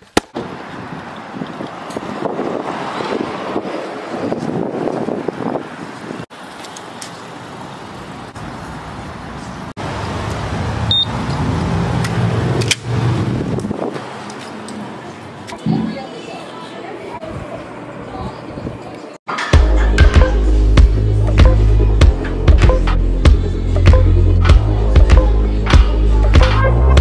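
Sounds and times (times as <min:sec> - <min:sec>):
road traffic: 0:00.0 - 0:27.0.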